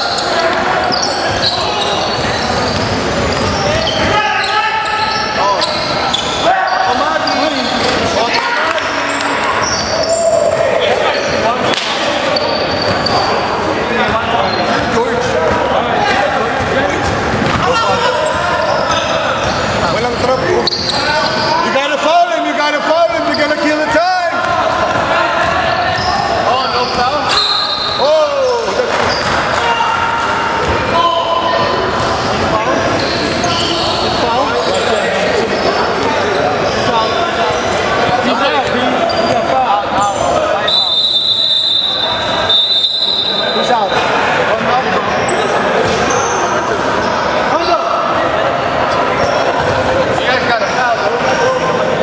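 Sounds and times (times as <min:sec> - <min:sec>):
people calling out: 0:00.0 - 0:11.4
referee's whistle: 0:25.9 - 0:29.3, 0:40.0 - 0:44.0.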